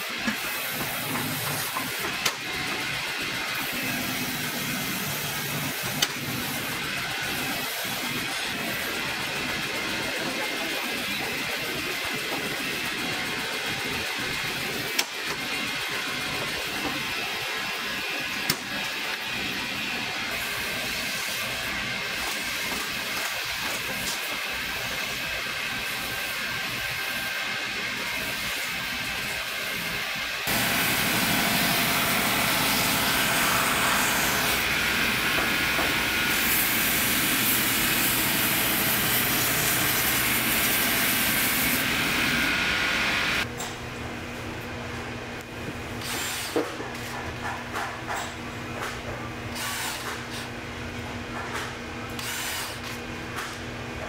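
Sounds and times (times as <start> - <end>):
sanding wheels grinding leather: 30.5 - 42.5.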